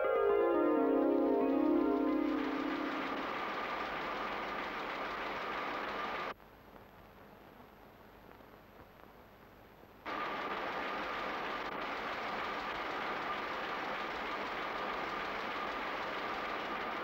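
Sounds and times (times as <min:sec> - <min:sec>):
printing press running: 0:02.0 - 0:06.3, 0:10.1 - 0:17.0.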